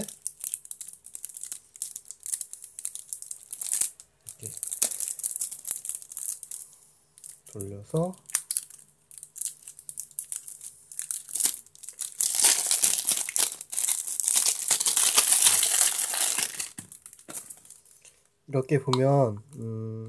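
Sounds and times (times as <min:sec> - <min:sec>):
plastic film crinkling: 0:00.0 - 0:18.3.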